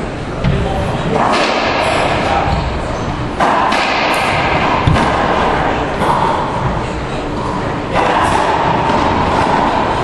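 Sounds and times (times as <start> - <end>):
steady noisy background: 0.0 - 10.0
racquetball thumps echoing: 0.4 - 10.0.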